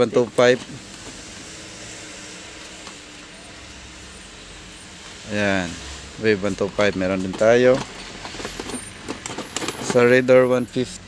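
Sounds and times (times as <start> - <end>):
steady background hiss: 0.0 - 8.5.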